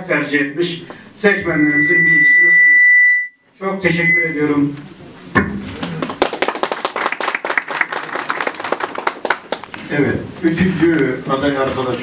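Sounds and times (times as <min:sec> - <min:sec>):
audience applauding: 0:05.8 - 0:09.9.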